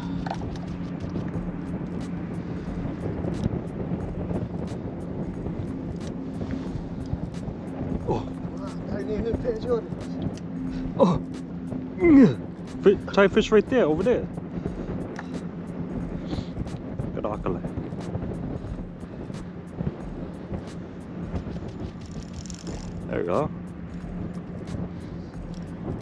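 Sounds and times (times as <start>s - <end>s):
low mechanical hum: 0.0s - 26.0s
wind noise: 0.0s - 26.0s
people talking: 8.1s - 10.1s, 12.0s - 14.3s, 17.1s - 17.7s, 23.1s - 23.5s.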